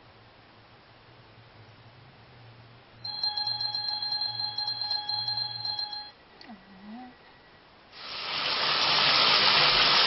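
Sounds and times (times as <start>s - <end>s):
electronic alarm beep tone: 3.0s - 6.1s.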